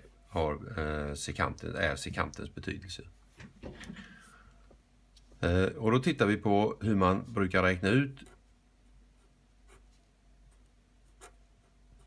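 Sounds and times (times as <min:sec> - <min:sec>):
pen writing on paper: 0:11.0 - 0:11.4.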